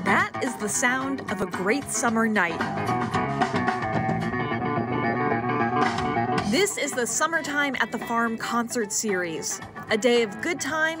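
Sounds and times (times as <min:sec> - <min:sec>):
electric guitar: 0:00.0 - 0:10.7
bass guitar: 0:00.0 - 0:11.0
live band playing: 0:00.0 - 0:11.0.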